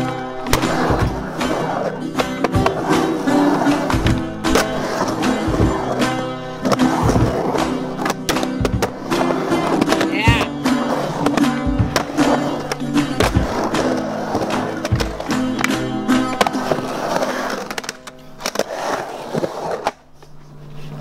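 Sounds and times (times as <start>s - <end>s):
skateboard clacking on coping: 0.0s - 20.0s
skateboard wheels rolling: 0.0s - 21.0s.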